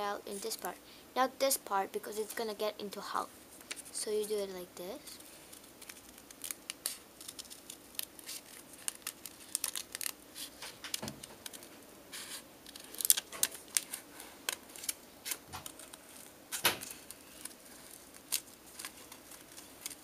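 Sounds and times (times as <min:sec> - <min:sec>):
scissors snipping paper: 0:05.8 - 0:20.0.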